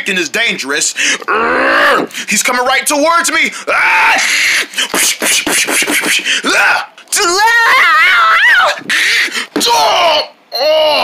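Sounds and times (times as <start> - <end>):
person making animal-like cry: 1.2 - 2.1, 7.6 - 11.0.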